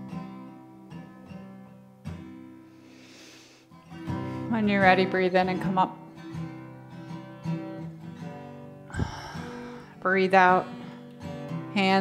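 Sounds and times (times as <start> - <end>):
acoustic guitar notes plucked: 0.0 - 2.7, 3.7 - 12.0.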